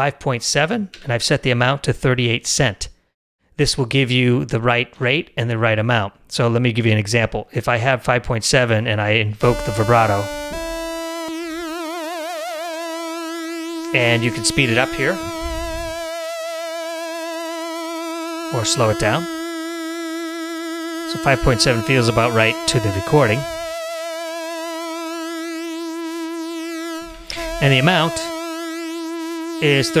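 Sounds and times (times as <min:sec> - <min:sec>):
synth lead note with vibrato: 0:09.4 - 0:30.0.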